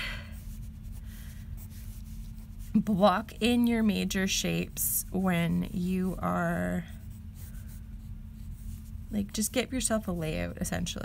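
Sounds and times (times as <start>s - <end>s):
pencil scratching on paper: 0.4s - 3.2s, 5.1s - 9.0s.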